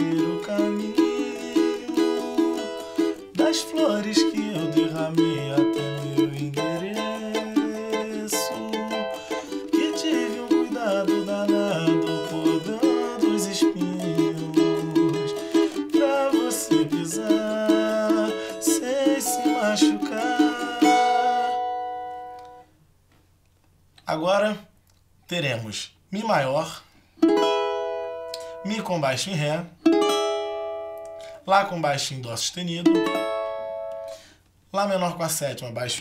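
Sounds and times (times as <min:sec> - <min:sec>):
man singing low: 0:00.0 - 0:02.6, 0:03.4 - 0:21.6
cavaquinho strumming: 0:00.0 - 0:22.7, 0:27.2 - 0:34.3.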